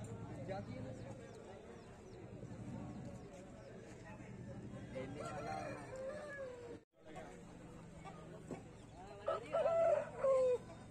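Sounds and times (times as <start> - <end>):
background chatter: 0.0 - 10.9
rooster crowing: 5.2 - 6.7, 9.3 - 10.7.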